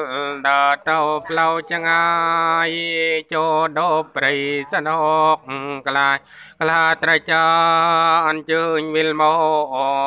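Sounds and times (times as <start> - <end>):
person chanting a blessing: 0.0 - 10.0.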